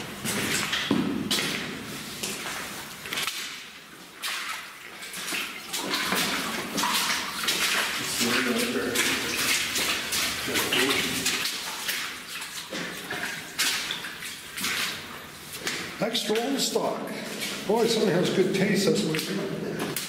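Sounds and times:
footsteps splashing through water: 0.0s - 20.0s
person speaking: 8.0s - 9.4s, 16.0s - 20.0s.

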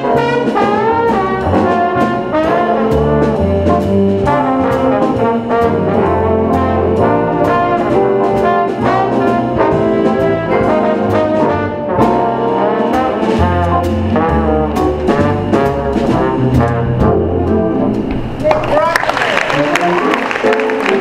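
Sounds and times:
trombone playing jazz melody: 0.0s - 18.1s, 19.5s - 21.0s
upright bass notes: 0.0s - 18.6s.

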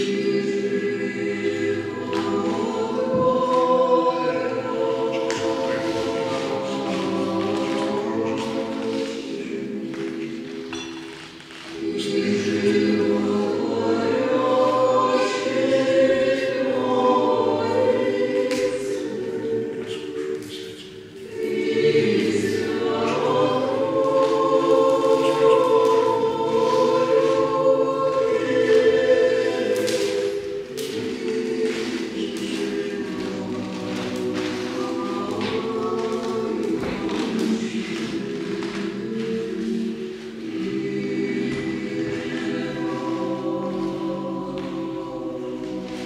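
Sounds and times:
choir singing a hymn: 0.0s - 46.0s.

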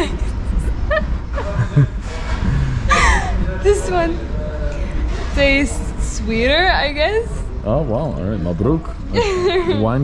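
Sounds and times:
woman laughing softly: 0.0s - 3.5s
low room hum: 0.0s - 10.0s.

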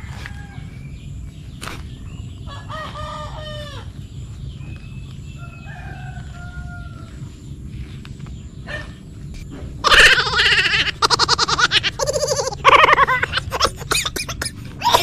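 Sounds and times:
faint crowing: 0.0s - 0.9s, 2.5s - 4.0s, 5.3s - 7.4s
rooster crowing: 0.0s - 0.9s, 2.5s - 3.9s, 5.3s - 7.3s
steady low rumble: 0.0s - 15.0s.

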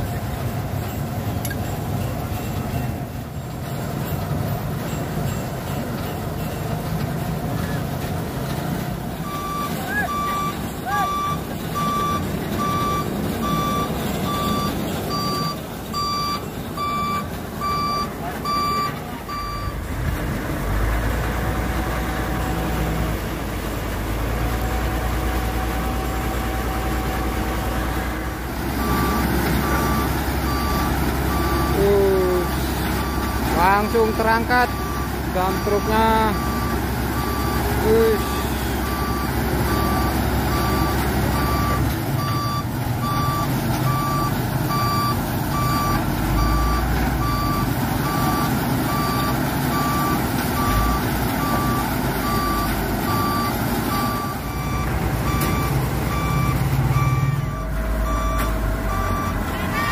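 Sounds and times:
deep engine drone: 0.0s - 59.9s
heavy truck engines running: 0.0s - 59.9s
truck reversing alarm beeping: 0.0s - 59.9s.

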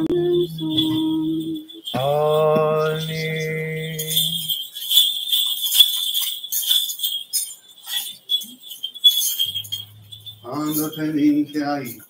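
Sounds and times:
person chanting a long note: 0.0s - 4.5s
small bells jingling: 0.0s - 12.0s.

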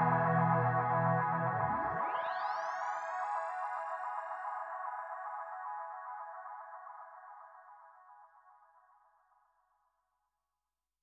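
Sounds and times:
pop song held tone: 0.0s - 2.1s.

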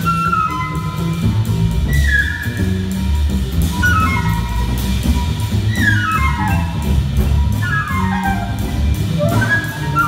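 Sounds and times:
drums with cymbals: 0.0s - 10.0s
walking double bass: 0.0s - 10.0s.

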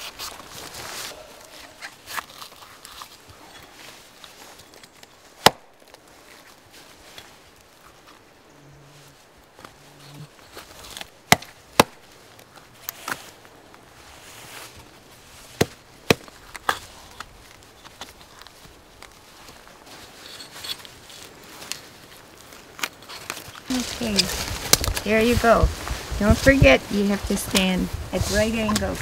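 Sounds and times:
axe chopping bark: 5.4s - 5.7s, 10.9s - 12.1s, 15.5s - 16.8s.

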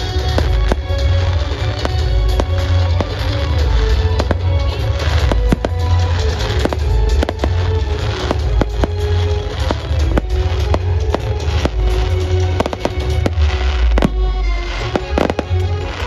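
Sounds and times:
fireworks booming bangs: 0.0s - 16.0s
fireworks crackles: 0.0s - 16.0s
music: 0.0s - 16.0s.

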